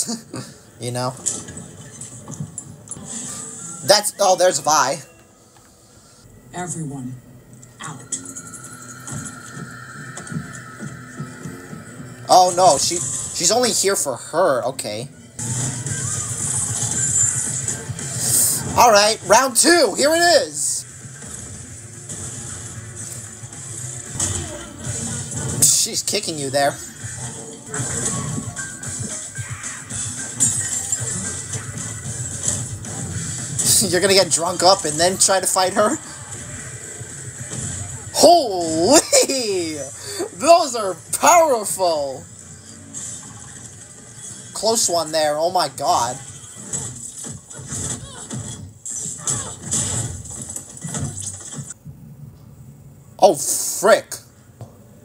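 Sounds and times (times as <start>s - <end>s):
quiet background music: 0.0s - 55.0s.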